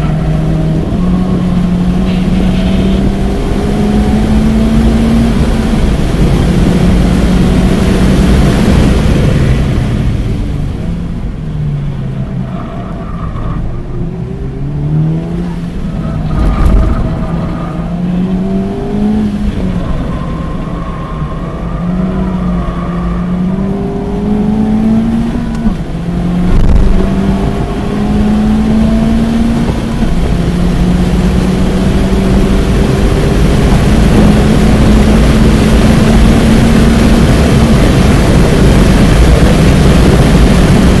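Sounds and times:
car engine accelerating: 0.0s - 41.0s
wind and tyre noise: 0.0s - 41.0s.

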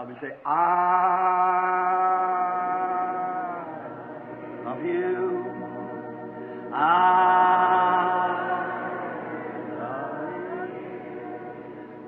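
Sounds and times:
voices singing long note: 0.5s - 12.0s.

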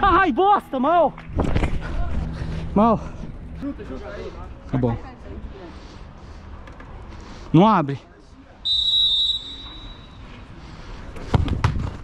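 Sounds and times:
referee's whistle blast: 8.7s - 10.2s.

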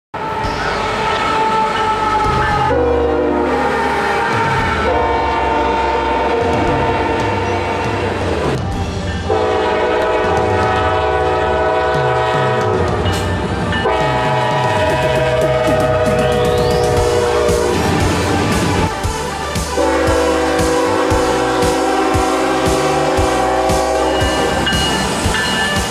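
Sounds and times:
locomotive air horn blasts: 0.2s - 8.3s, 9.3s - 13.2s, 13.8s - 25.5s
train rumble and rail clatter: 0.2s - 25.9s.

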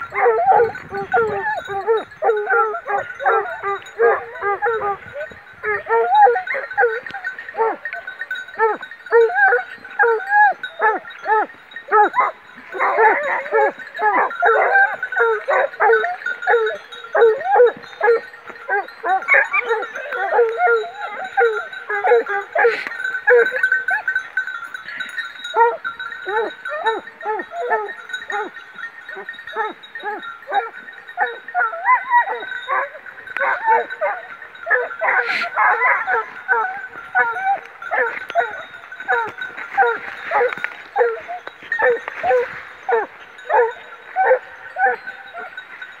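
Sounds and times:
hounds baying: 0.0s - 46.0s.

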